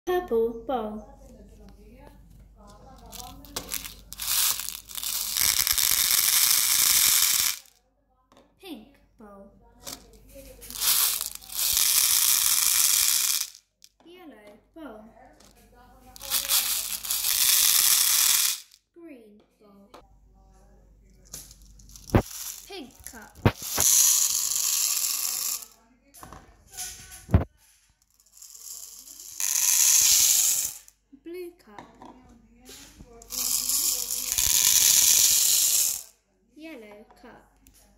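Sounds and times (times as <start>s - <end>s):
metal balls pouring into plastic bowl: 3.0s - 7.7s, 9.9s - 13.6s, 16.2s - 18.8s, 21.3s - 25.8s, 28.0s - 30.9s, 33.2s - 36.1s.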